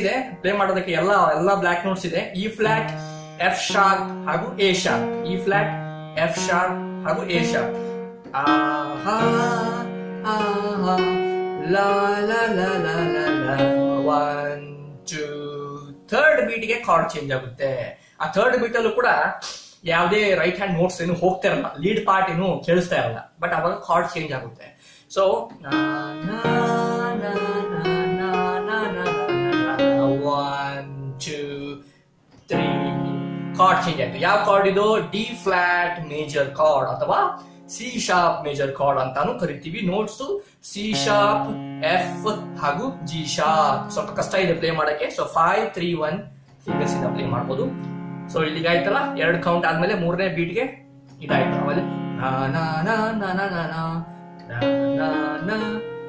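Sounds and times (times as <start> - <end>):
electronic keyboard melody and chords: 0.0 - 16.1, 25.4 - 31.8, 32.4 - 38.4, 40.8 - 45.0, 45.6 - 56.0.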